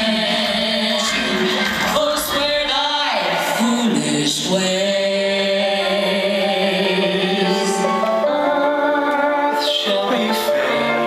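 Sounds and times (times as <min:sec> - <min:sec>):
person singing: 0:00.0 - 0:11.0
instrumental accompaniment: 0:05.1 - 0:11.0.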